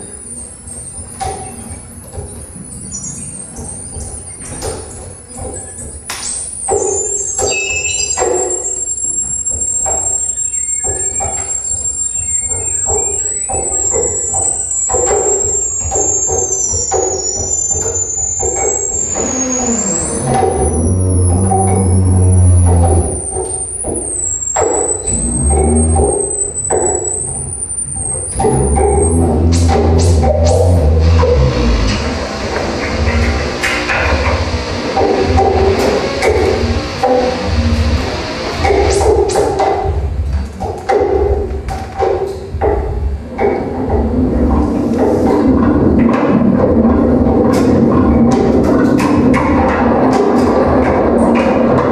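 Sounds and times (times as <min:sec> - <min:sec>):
high wavering whistling tone: 0:06.4 - 0:34.5
dense electronic noise: 0:07.9 - 0:41.6
heavy low pulses: 0:19.0 - 0:35.8.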